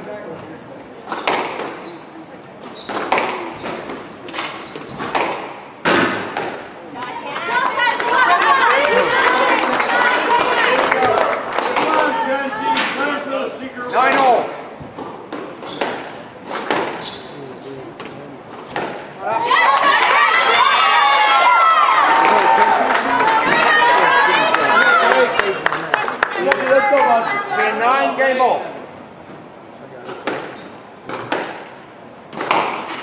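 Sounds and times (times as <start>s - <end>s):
squash ball smacks: 1.1s - 1.8s, 2.9s - 3.5s, 4.3s - 6.6s, 30.1s - 31.7s, 32.3s - 33.0s
crowd shouting: 7.2s - 12.9s, 19.2s - 27.9s.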